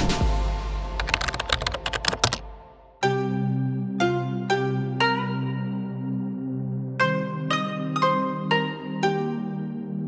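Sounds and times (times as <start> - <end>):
rapid sharp clicks: 1.0 - 2.5.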